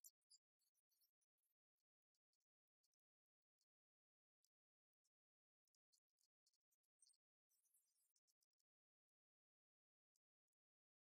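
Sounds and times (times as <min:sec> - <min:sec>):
faint high-pitched clicks: 0:00.0 - 0:11.0.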